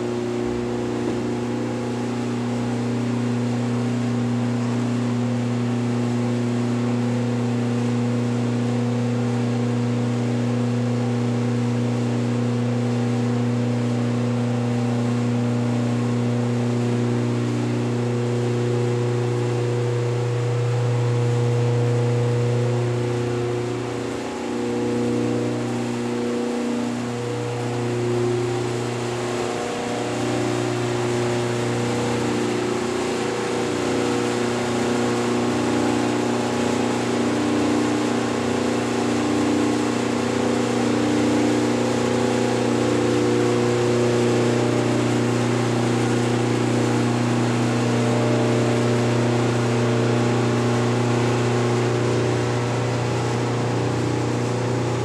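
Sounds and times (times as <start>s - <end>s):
mechanical drone with low hum: 0.0s - 55.0s.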